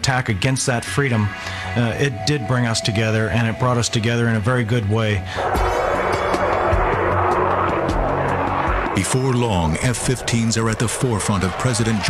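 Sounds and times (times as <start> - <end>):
fighter jet engine roar: 0.0 - 12.0.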